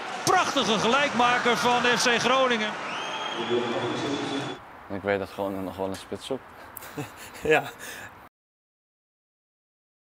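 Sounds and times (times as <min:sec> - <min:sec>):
crowd cheering and chanting: 0:00.0 - 0:04.6.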